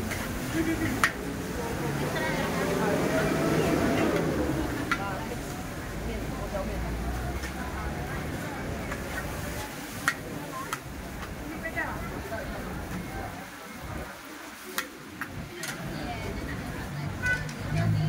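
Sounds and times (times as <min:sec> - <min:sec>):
voices chattering: 0:00.0 - 0:18.0.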